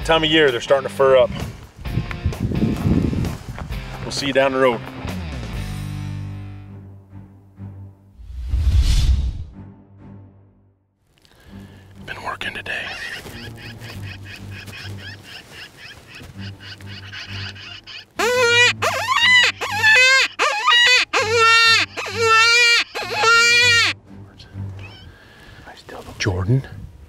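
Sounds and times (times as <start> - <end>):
predator distress call wails: 18.2 - 24.0.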